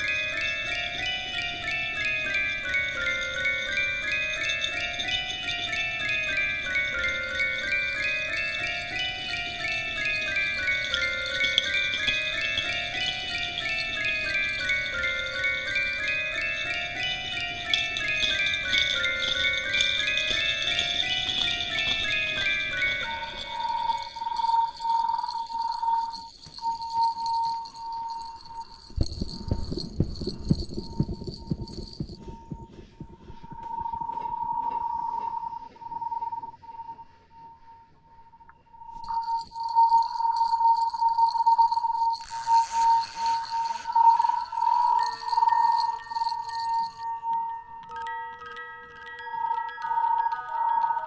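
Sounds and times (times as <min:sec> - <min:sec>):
mallet notes: 0:00.0 - 0:36.4
chime-like tones: 0:00.0 - 0:51.0
low rumble: 0:29.0 - 0:35.6.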